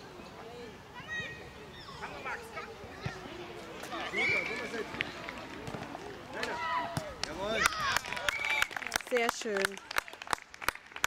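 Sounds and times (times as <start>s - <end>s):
voices calling and shouting: 0.0s - 9.0s.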